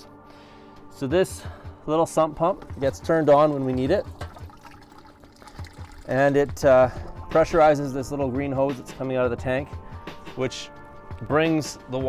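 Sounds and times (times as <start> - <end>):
water trickling and pouring: 2.4 - 7.6.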